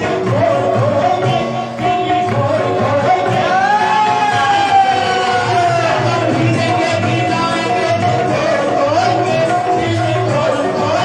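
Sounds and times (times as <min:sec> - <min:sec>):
devotional singing with music: 0:00.0 - 0:11.0.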